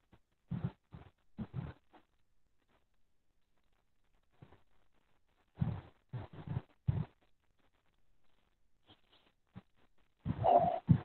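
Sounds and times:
dog vocalizing: 0:10.3 - 0:11.0.

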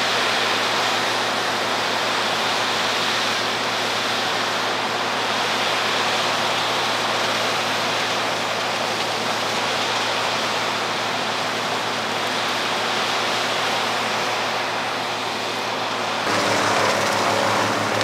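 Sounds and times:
wood chipper running: 0:00.0 - 0:18.0.

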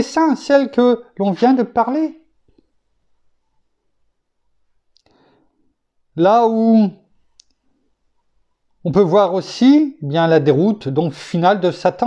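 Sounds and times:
man inhaling: 0:05.0 - 0:05.6
mouth click: 0:07.4 - 0:07.6.

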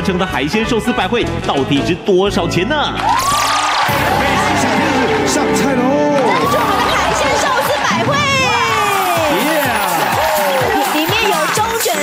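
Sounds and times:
background music: 0:00.0 - 0:12.0
people exclaiming and calling out: 0:03.1 - 0:12.0.

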